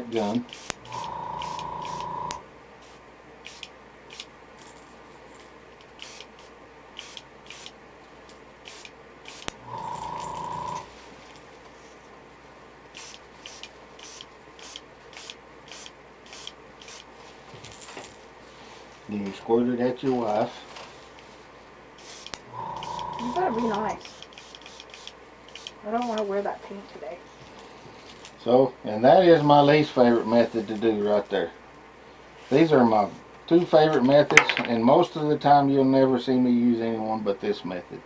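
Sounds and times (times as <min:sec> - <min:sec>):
airbrush spurts of air: 0:00.5 - 0:02.1, 0:02.8 - 0:04.3, 0:06.0 - 0:07.8, 0:08.6 - 0:10.0, 0:12.9 - 0:17.1, 0:22.0 - 0:23.2, 0:24.0 - 0:26.2.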